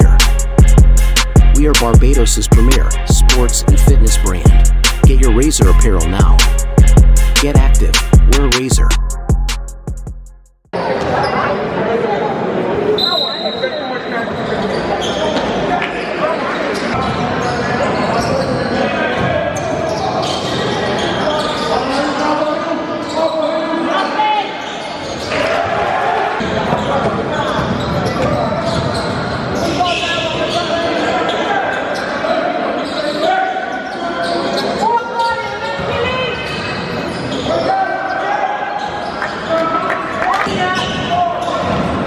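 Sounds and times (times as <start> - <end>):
players and spectators shouting: 25.2 - 26.7, 37.3 - 41.5.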